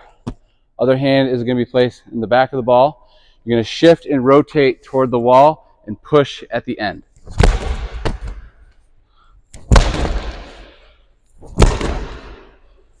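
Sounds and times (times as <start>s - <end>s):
medicine ball thudding into wall: 7.3s - 8.5s, 9.6s - 10.7s, 11.5s - 12.5s.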